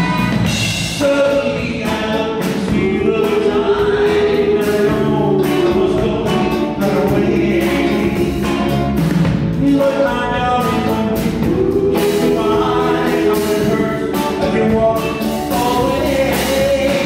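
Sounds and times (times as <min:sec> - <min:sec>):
backing band with drum beat: 0:00.0 - 0:17.0
man singing lead vocals: 0:00.0 - 0:17.0
group harmony voices: 0:01.2 - 0:09.0, 0:10.6 - 0:17.0.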